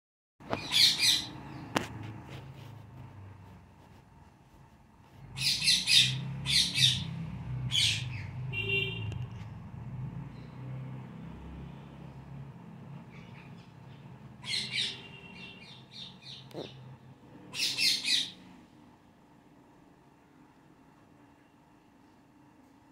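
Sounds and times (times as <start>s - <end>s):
parakeets screeching: 0.5s - 1.6s, 5.3s - 8.4s, 13.1s - 18.5s.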